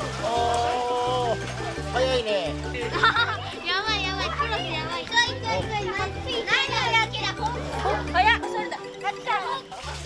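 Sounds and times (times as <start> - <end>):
background music with bass: 0.0 - 10.0
children talking and calling out: 2.9 - 10.0.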